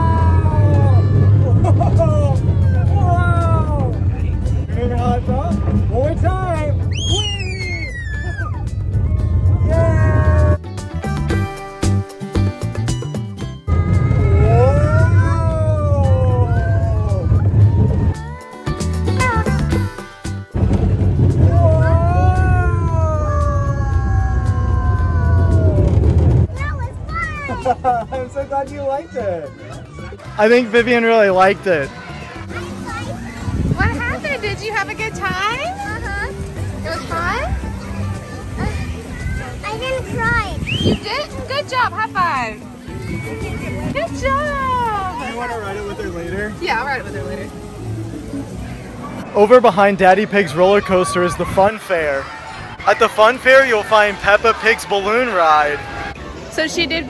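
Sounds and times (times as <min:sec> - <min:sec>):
wind on microphone: 0:00.0 - 0:10.6, 0:13.7 - 0:18.4, 0:20.5 - 0:27.3, 0:33.2 - 0:35.6, 0:38.5 - 0:41.5
roller coaster train rumbling: 0:00.0 - 0:11.5, 0:13.6 - 0:28.4
roller coaster rumbling: 0:00.0 - 0:28.5, 0:29.6 - 0:57.0
riders screaming excitedly: 0:06.9 - 0:10.6, 0:13.9 - 0:18.2, 0:21.5 - 0:26.1
child's drawn-out cry: 0:13.7 - 0:17.2, 0:21.6 - 0:25.9.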